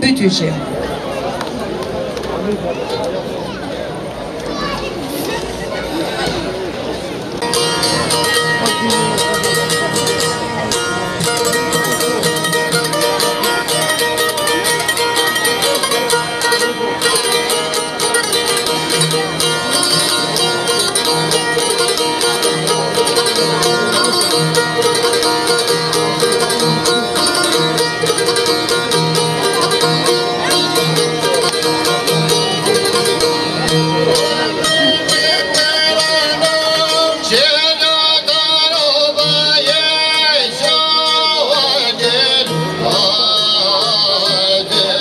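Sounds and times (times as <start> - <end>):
plucked lutes folk tune: 0.0 - 45.0.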